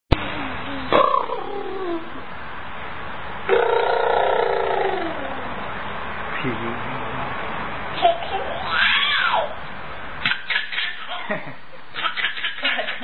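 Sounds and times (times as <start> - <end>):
baby laughing: 8.0 - 9.5, 10.2 - 13.0.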